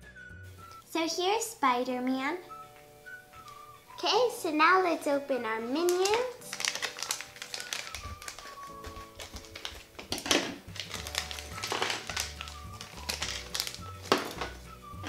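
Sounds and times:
plastic wrapper crinkling: 0:05.6 - 0:15.0
scissors cutting plastic: 0:05.8 - 0:14.6
background music with bass line: 0:10.1 - 0:15.0.

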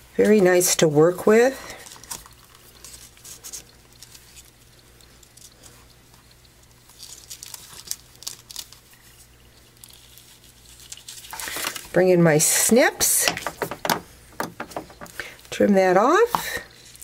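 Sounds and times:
rustling of cord and card: 0:01.7 - 0:12.0.

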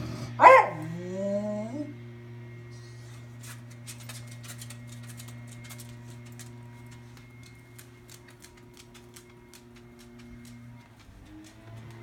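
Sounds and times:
dog whining: 0:00.0 - 0:02.0
steady low hum: 0:00.0 - 0:12.0
small dog barking: 0:00.4 - 0:01.0.

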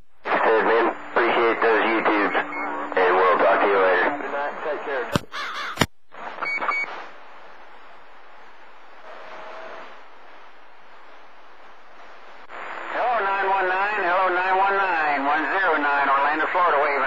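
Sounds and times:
radio static hiss: 0:00.0 - 0:17.0
distorted radio voice: 0:00.2 - 0:05.8, 0:12.9 - 0:17.0.

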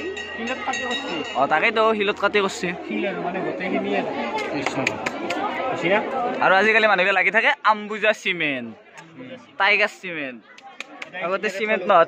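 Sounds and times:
overlapping voices: 0:03.0 - 0:06.5, 0:10.4 - 0:11.5.

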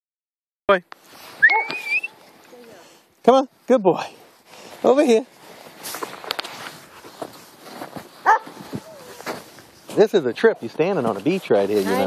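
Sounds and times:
footsteps crunching in snow: 0:03.3 - 0:12.0
dog barking loudly: 0:08.2 - 0:08.6.

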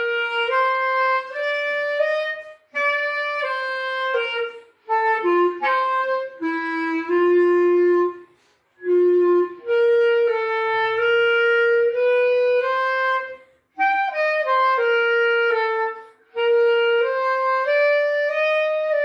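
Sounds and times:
clarinet solo melody: 0:00.0 - 0:19.0.

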